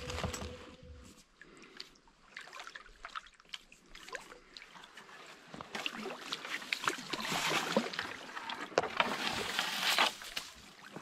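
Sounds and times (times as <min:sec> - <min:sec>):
reeds rustling against a kayak: 0:05.0 - 0:11.0.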